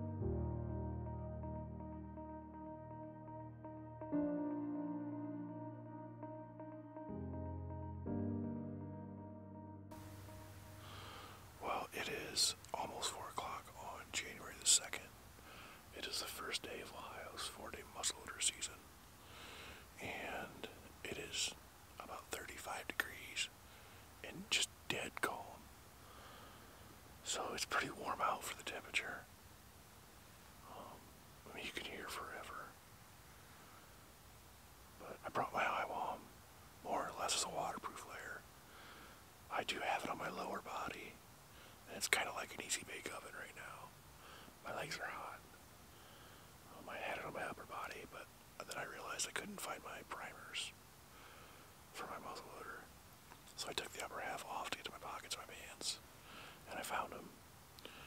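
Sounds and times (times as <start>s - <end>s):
man whispering: 10.8s - 18.8s, 19.5s - 23.6s, 24.2s - 25.6s, 27.2s - 29.3s, 30.6s - 32.8s, 35.0s - 38.9s, 39.5s - 45.5s, 46.6s - 50.8s, 51.9s - 52.9s, 53.5s - 58.0s.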